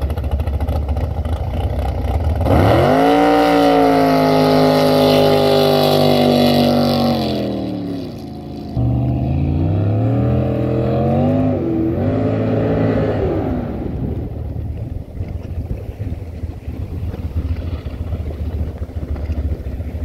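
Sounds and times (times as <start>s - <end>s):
jet boat engine revving: 0.0s - 20.0s.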